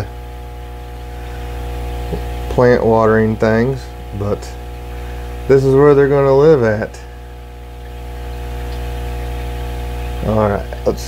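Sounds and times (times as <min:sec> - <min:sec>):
aquarium equipment electric hum: 0:00.0 - 0:11.0.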